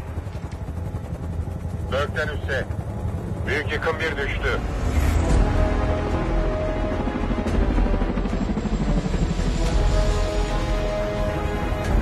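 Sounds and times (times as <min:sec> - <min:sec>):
helicopter rotor beating: 0:00.0 - 0:12.0
suspenseful film score: 0:00.0 - 0:12.0.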